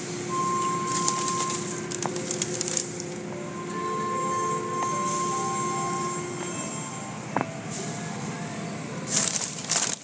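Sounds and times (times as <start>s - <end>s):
car wash spray and machinery: 0.0s - 10.0s.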